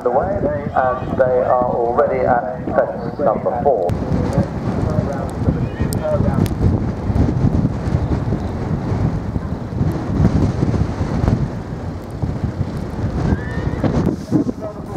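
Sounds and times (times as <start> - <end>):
indistinct voices: 0.0 - 6.5, 13.3 - 14.9
wind buffeting microphone: 0.0 - 14.9.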